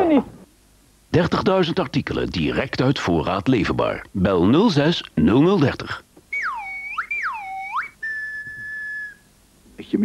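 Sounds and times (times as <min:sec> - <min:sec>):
whistle swooping: 0:06.3 - 0:09.3.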